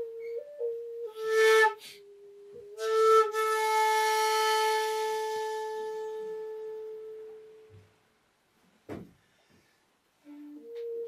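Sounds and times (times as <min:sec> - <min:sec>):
breathy bamboo flute notes: 0:00.0 - 0:07.9, 0:10.2 - 0:11.0.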